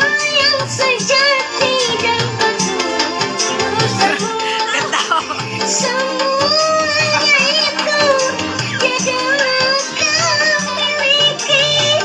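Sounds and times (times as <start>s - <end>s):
backing music: 0.0s - 12.0s
high voice singing ornamented melody: 5.8s - 12.0s.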